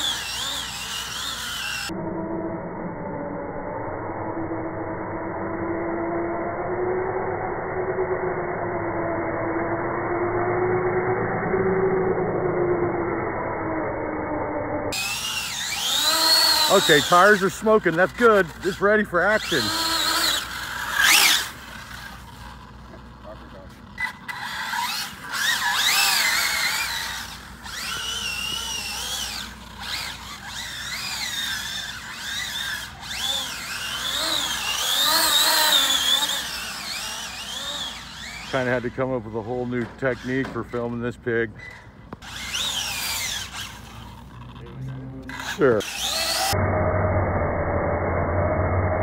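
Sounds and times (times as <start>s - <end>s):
electric motor whine rev: 0.0s - 41.0s, 42.1s - 49.0s.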